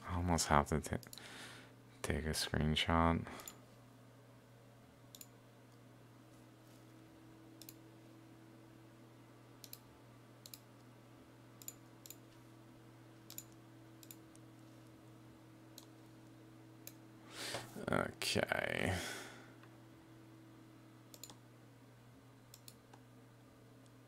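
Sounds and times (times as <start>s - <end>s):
faint electrical hum: 0.0s - 24.0s
computer mouse clicking: 5.1s - 5.3s, 7.6s - 7.8s, 9.6s - 10.9s, 11.6s - 12.2s, 13.3s - 14.4s, 21.1s - 21.4s, 22.5s - 23.0s.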